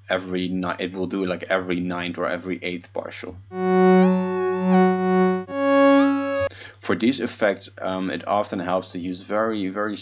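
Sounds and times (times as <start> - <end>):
sustained synth tone: 3.5 - 6.5.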